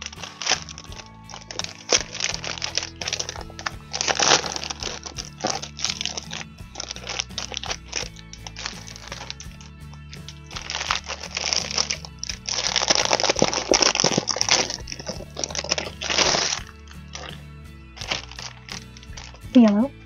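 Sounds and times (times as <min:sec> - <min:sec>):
plastic packaging crinkling: 0:00.0 - 0:17.4, 0:18.0 - 0:19.8
background music with low notes: 0:00.0 - 0:20.0.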